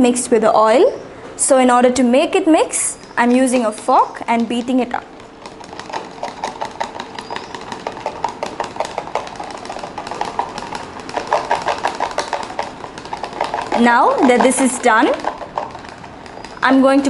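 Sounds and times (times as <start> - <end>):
fork clicking against plastic cup: 3.2 - 16.7.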